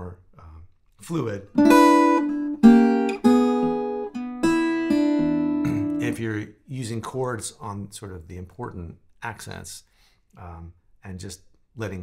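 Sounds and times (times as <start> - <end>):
acoustic guitar fingerstyle blues: 1.5 - 6.3.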